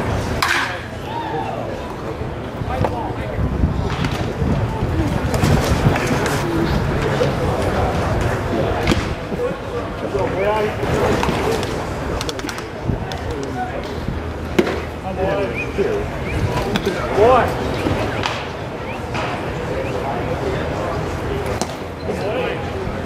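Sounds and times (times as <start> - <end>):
crowd chatter: 0.0 - 23.0
steady background noise: 0.0 - 23.0.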